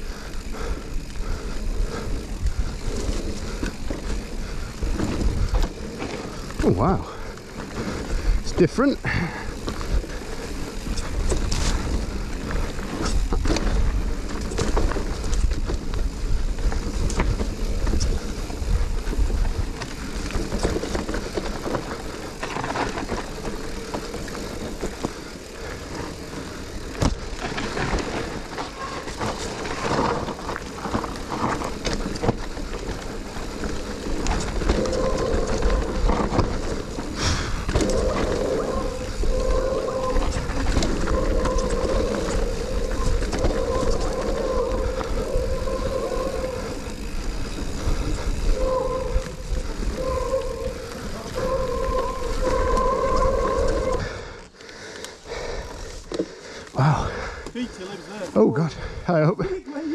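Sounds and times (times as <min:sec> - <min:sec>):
tyre and wind noise: 0:00.0 - 0:54.4
bike rattling and knocking: 0:00.0 - 0:58.2
steady buzzing tone: 0:27.9 - 0:54.4.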